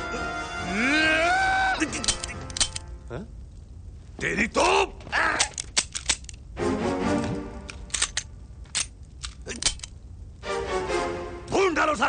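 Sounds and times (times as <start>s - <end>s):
film background music: 0.0s - 3.3s, 6.4s - 8.8s, 9.5s - 12.0s.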